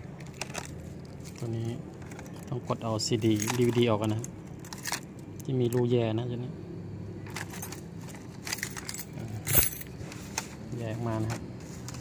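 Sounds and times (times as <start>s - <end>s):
keys jangling: 7.3s - 9.9s.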